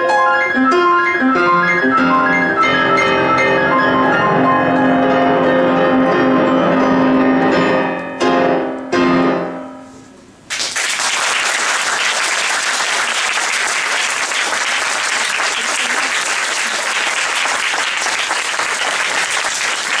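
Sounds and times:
piano chord: 0:00.0 - 0:10.4
audience applause: 0:10.5 - 0:20.0.

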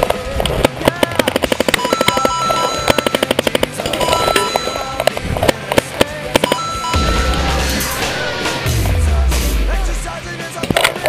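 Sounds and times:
paintball markers firing: 0:00.0 - 0:06.6.

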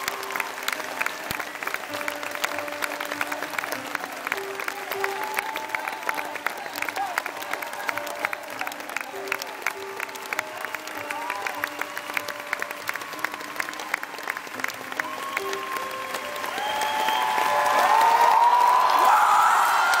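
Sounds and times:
crowd clapping and cheering: 0:00.0 - 0:20.0.

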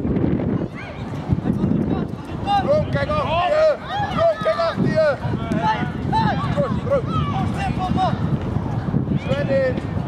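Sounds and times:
wind buffeting microphone: 0:00.0 - 0:10.0
distant high shout: 0:03.2 - 0:08.2.

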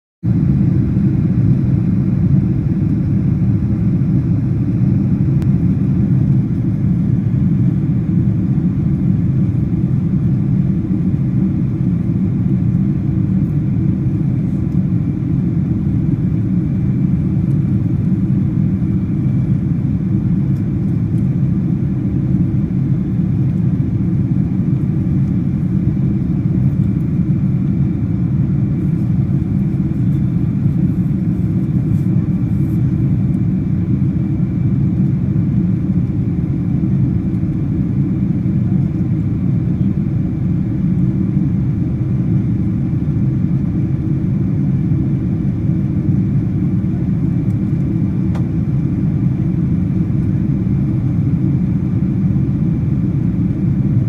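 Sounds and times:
jet engine noise: 0:00.2 - 0:54.0.

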